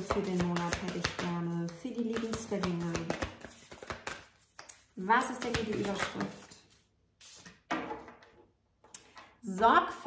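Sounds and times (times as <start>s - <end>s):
cards being shuffled: 0.0s - 7.6s.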